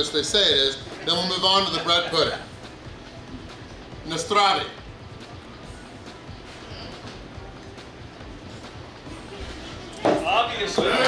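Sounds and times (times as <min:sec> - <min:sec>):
restaurant room noise: 0:00.0 - 0:11.0.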